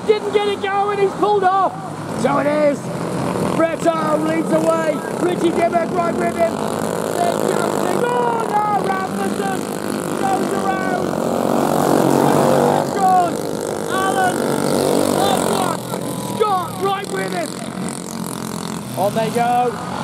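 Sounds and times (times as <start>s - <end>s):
racing kart engines passing: 0.0s - 20.0s.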